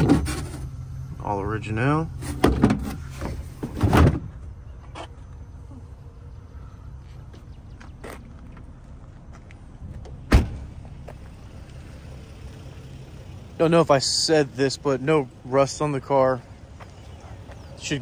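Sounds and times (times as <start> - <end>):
car engine idling: 0.0 - 18.0
trunk lid slamming shut: 2.3 - 4.4, 10.3 - 10.7.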